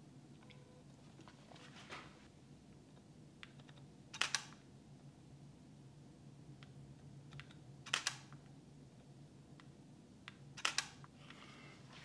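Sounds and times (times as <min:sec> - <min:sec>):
low steady hum: 0:00.0 - 0:12.0
camera shutter clicks: 0:04.2 - 0:04.6, 0:07.9 - 0:08.3, 0:10.6 - 0:11.0.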